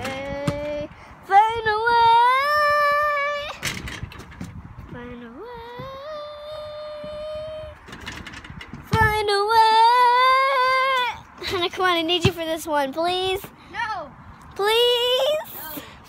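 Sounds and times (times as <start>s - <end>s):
girl singing a cappella: 0.0s - 3.6s, 4.9s - 7.8s, 8.9s - 13.4s, 14.6s - 15.9s.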